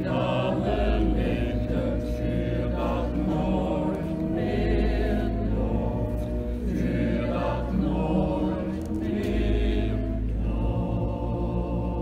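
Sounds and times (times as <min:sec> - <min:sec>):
church choir singing: 0:00.0 - 0:12.0.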